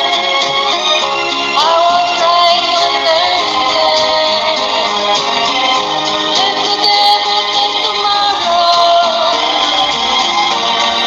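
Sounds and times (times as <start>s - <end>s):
backing track: 0.0s - 11.0s
person singing: 6.4s - 9.8s.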